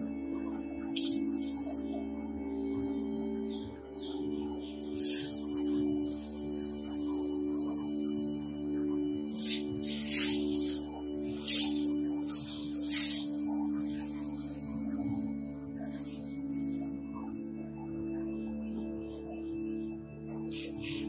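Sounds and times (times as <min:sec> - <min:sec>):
background music with low tones: 0:00.0 - 0:21.0
hose spray nozzle hissing: 0:01.0 - 0:01.9, 0:04.6 - 0:16.9, 0:20.5 - 0:21.0.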